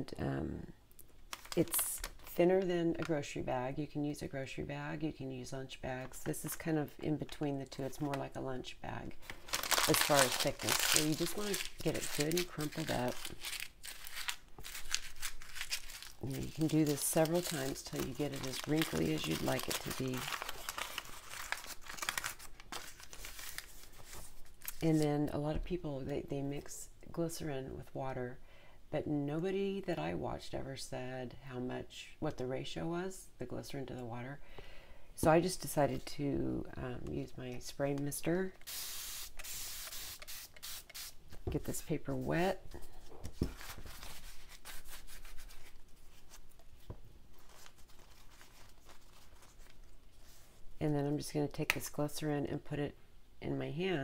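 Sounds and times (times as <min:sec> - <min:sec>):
paper crumpling: 0:01.3 - 0:02.3, 0:09.2 - 0:25.0, 0:43.0 - 0:50.6.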